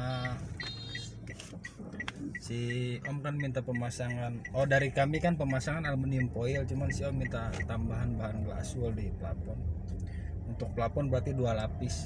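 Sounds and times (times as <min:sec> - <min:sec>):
repeating electronic beep: 0:00.0 - 0:07.4
car engine and road rumble: 0:00.0 - 0:12.0.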